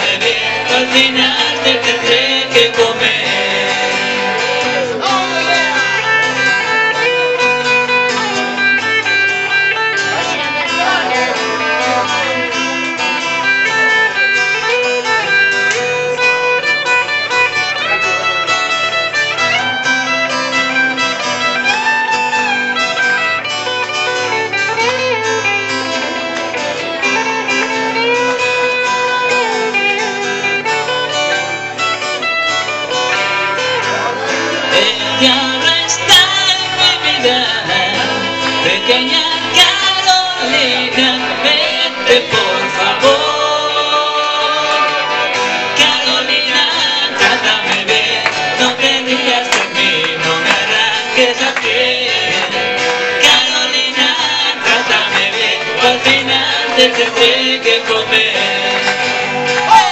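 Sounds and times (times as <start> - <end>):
acoustic guitar chords: 0.0 - 59.9
electric guitar lead with bends: 0.0 - 59.9.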